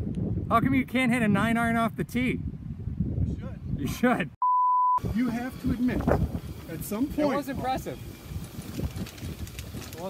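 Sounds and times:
wind on microphone: 0.0 - 4.4, 5.0 - 10.0
golf cart rumbling: 5.1 - 10.0.

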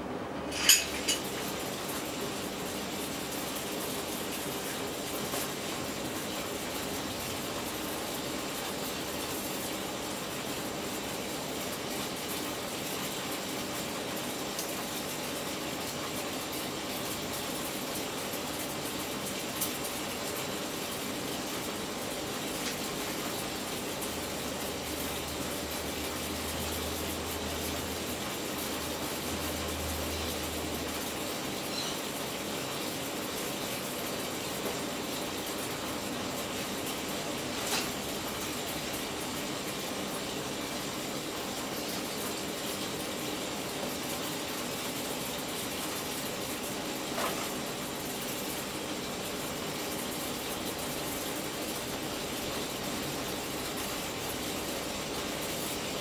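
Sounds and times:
electric arcs crackling and hissing: 0.9 - 56.0.

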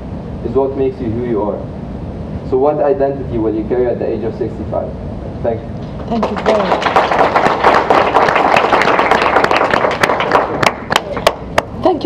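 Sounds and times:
audience applauding: 6.0 - 11.7.

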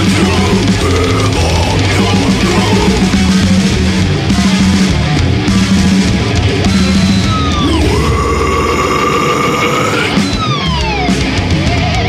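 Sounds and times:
bass guitar: 0.0 - 12.0
distorted guitars: 0.0 - 12.0
drums playing: 0.0 - 12.0.

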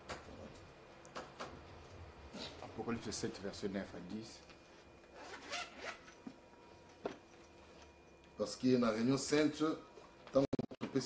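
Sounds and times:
zipper pulled open: 5.2 - 6.2.

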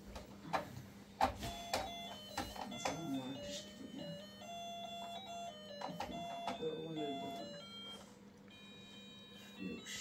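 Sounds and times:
low steady hum: 0.0 - 10.0
electronic toy tune: 1.5 - 10.0.

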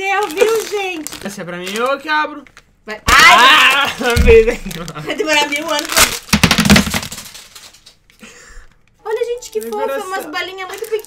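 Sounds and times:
plastic candy wrapper crinkling: 0.0 - 2.8, 3.6 - 11.0.

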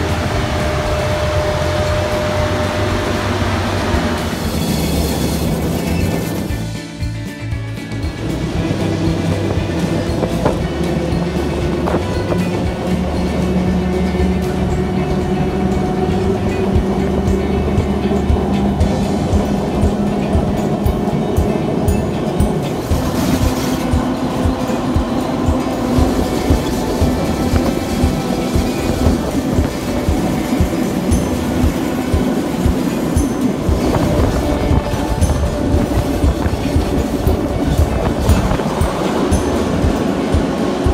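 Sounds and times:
train running hum: 0.0 - 40.9
train wheels clicking over rail joints: 0.0 - 40.9.

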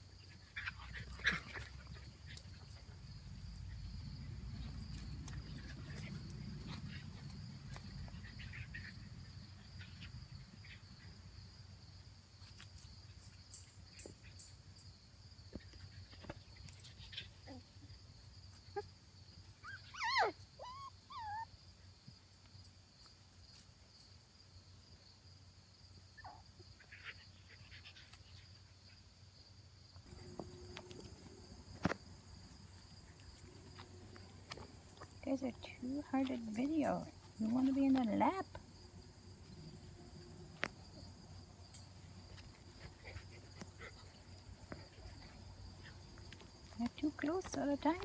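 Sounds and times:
puppies squeaking and yipping: 19.6 - 21.5.

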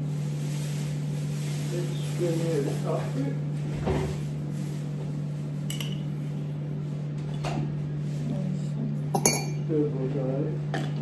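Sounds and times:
teaspoon clinking against mug: 9.2 - 9.6.

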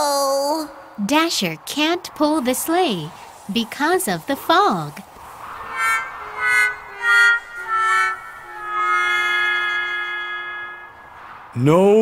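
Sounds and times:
descending failure music sting: 5.6 - 11.1.

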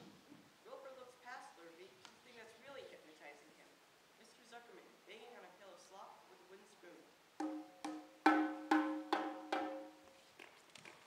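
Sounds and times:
pitched percussion strikes: 7.4 - 10.0.

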